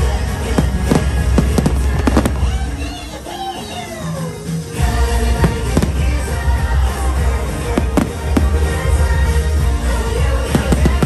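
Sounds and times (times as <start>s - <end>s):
fireworks cracking: 0.0s - 11.0s
loud music: 0.0s - 11.0s.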